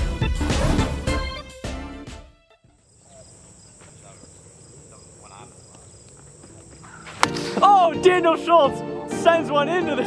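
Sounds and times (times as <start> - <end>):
insects buzzing: 2.7 - 7.6
soft pulsing insect trill: 2.8 - 7.1
distant voices: 2.9 - 8.0.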